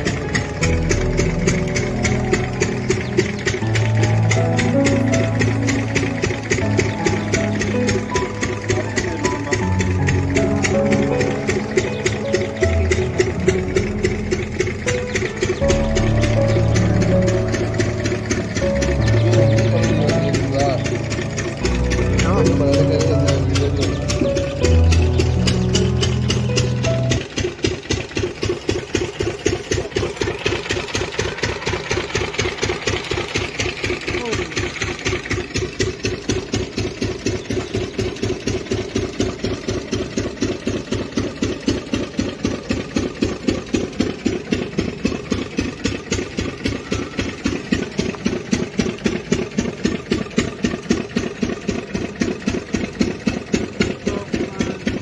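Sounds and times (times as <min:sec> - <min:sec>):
engine running with slow knocks: 0:00.0 - 0:55.0.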